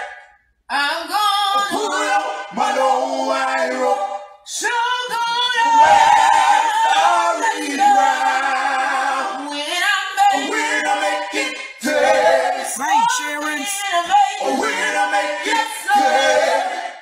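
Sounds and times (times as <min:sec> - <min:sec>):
a cappella gospel singing: 0:00.0 - 0:17.0.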